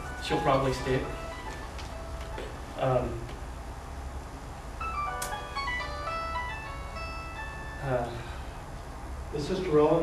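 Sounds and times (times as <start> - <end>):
simple electronic tune: 0.0 - 2.8, 4.8 - 8.6
low steady hum: 0.0 - 10.0.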